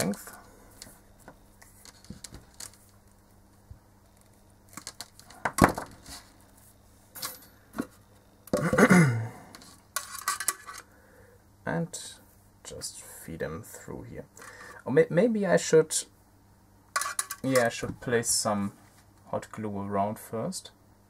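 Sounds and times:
parts clattering on workbench: 4.8s - 6.3s, 7.2s - 8.9s, 9.6s - 10.9s, 17.0s - 17.8s
tools clicking and knocking: 17.0s - 17.7s.

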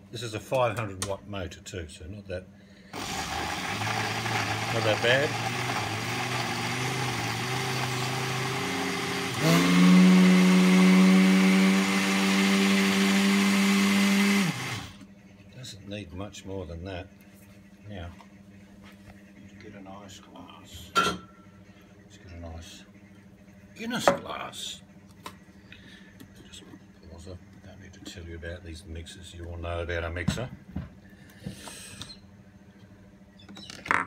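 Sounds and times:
blender motor running: 2.9s - 15.0s.

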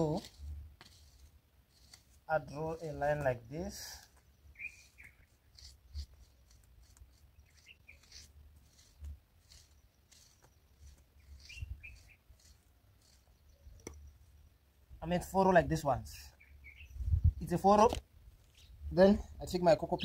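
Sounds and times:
stick scratching through soil: 0.0s - 14.3s
faint bird chirps: 4.0s - 14.6s, 16.1s - 17.5s.

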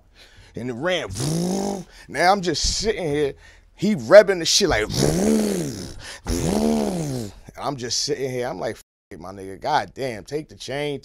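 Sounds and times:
man imitating car engine: 0.9s - 2.0s, 4.7s - 7.5s.

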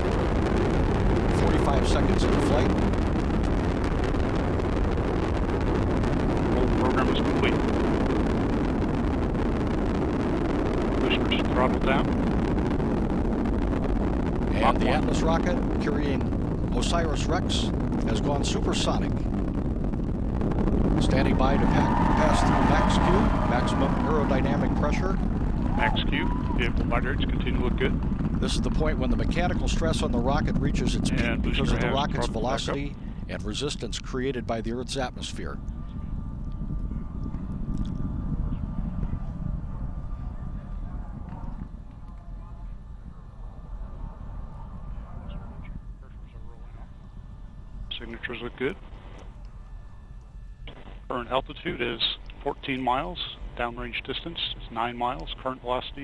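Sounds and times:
rocket low rumble: 0.0s - 56.0s.

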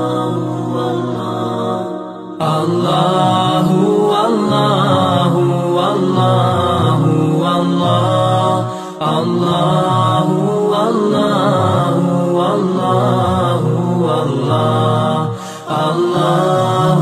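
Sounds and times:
devotional vocal chant: 0.0s - 17.0s.

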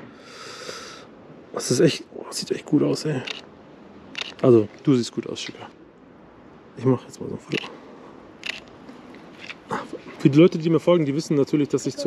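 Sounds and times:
camera shutter click: 4.1s - 4.4s, 8.4s - 8.7s.

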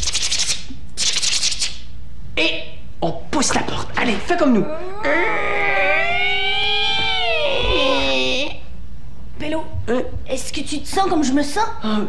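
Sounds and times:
door creaking open: 4.7s - 8.4s.

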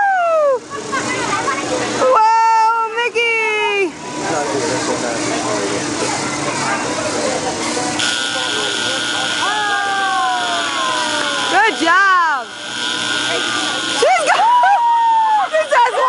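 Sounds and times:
high voices whooping: 0.0s - 0.7s, 8.2s - 16.0s.

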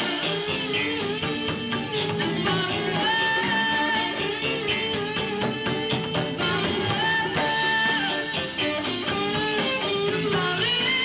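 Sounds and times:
bass guitar: 0.0s - 11.0s
drum kit beat: 0.0s - 11.0s
electric guitars: 0.0s - 11.0s.

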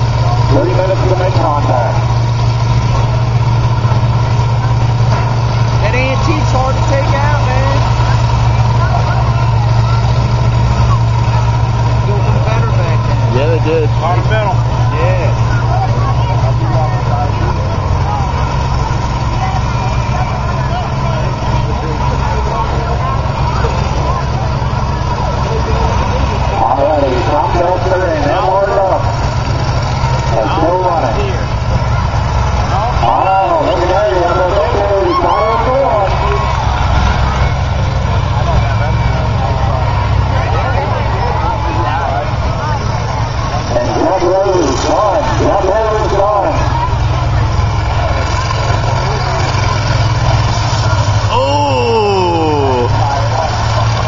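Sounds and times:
combine harvester engines running: 0.0s - 54.0s
crowd voices: 0.0s - 54.0s.

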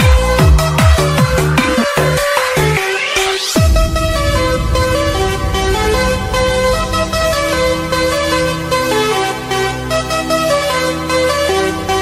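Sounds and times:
electronic dance music: 0.0s - 3.7s.

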